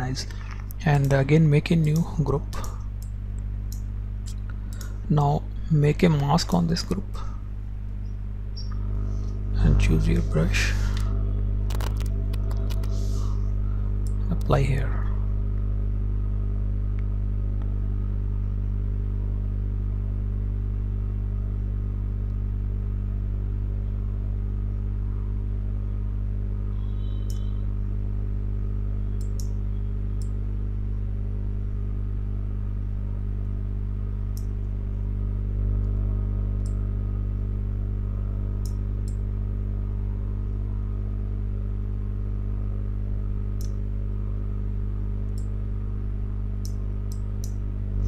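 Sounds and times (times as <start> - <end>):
electrical hum: 0.0 - 48.0
faint clicks: 1.8 - 5.0.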